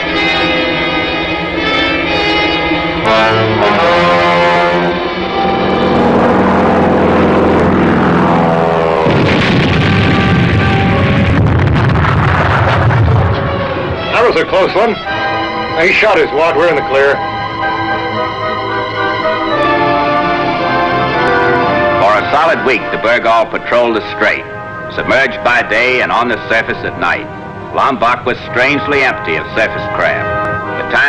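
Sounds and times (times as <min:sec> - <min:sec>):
orchestral music with brass: 0:00.0 - 0:11.7, 0:13.0 - 0:31.0
bomb exploding: 0:06.6 - 0:14.0.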